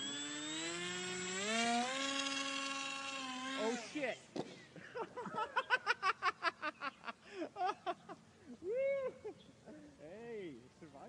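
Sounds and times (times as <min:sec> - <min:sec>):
model airplane motor whining: 0:00.0 - 0:04.1.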